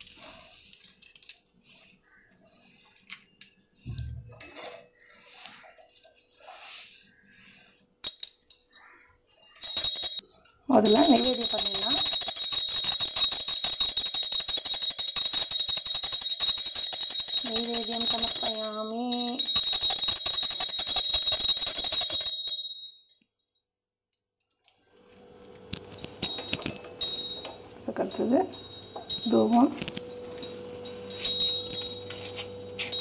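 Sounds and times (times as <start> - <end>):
brass hand bell ringing: 10.9 - 22.9, 26.2 - 33.0.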